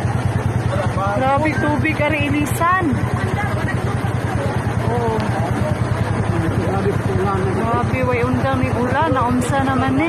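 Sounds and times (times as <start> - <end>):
floodwater rushing: 0.0 - 10.0.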